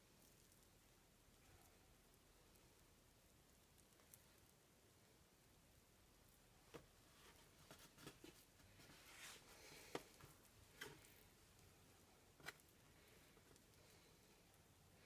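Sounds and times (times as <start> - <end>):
soft taps and squishes of dough: 6.5 - 13.9.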